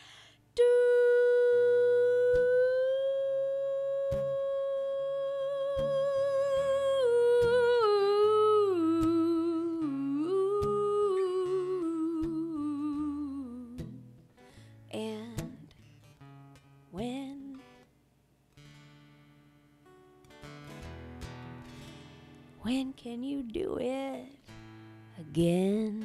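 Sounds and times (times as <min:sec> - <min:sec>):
woman humming a melody: 0:00.6 - 0:14.0
soft acoustic guitar notes: 0:00.6 - 0:26.0.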